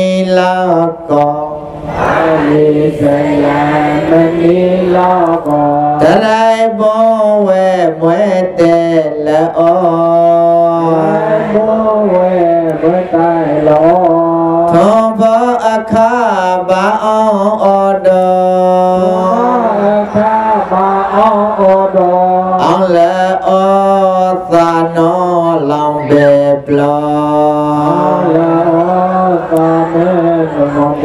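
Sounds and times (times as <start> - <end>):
devotional chant singing: 0.0 - 31.0.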